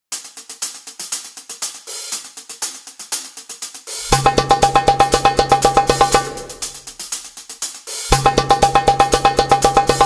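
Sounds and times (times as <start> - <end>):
fast hi-hat drum rhythm: 0.1 - 10.0.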